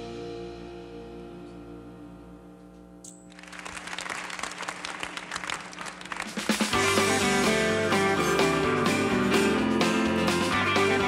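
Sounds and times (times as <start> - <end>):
accompaniment track with guitar: 0.0 - 3.2, 6.2 - 11.0
applause: 3.3 - 6.8.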